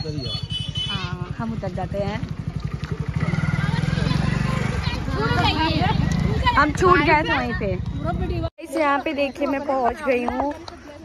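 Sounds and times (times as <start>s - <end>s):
motorcycle engine idling: 0.0s - 8.4s
voices talking: 0.0s - 11.0s.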